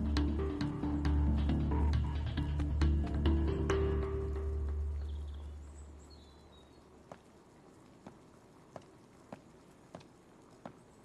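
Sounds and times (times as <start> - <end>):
background score chord over bass: 0.0 - 5.6.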